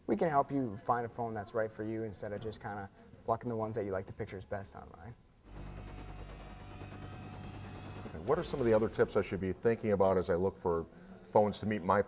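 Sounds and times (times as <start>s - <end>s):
electronic drone with low hum: 5.5s - 9.1s
faint high whine: 5.5s - 9.6s.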